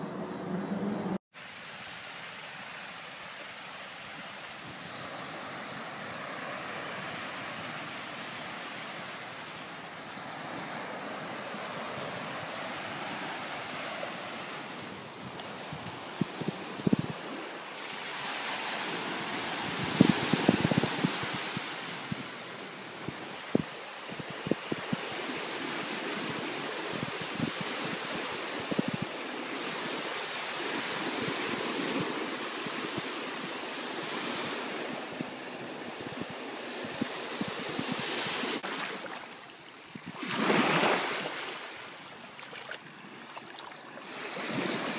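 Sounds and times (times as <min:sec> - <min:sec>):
waves washing on sandy beach: 0:01.4 - 0:44.9
wind buffeting microphone: 0:10.1 - 0:44.9.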